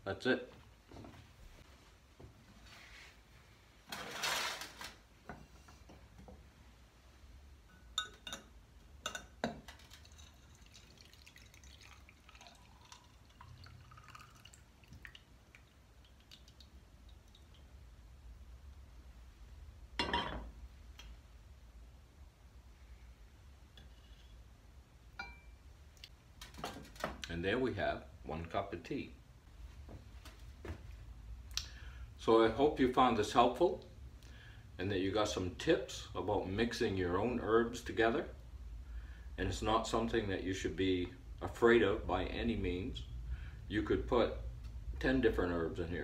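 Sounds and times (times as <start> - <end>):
glass and metal cookware clinking: 7.7 - 10.8, 20.0 - 20.5, 25.2 - 25.6
liquid trickling into a mug: 9.8 - 17.6.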